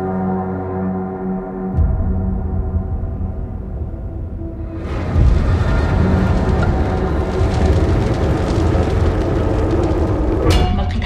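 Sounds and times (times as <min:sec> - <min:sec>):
large fire rumbling and crackling: 0:04.4 - 0:11.0.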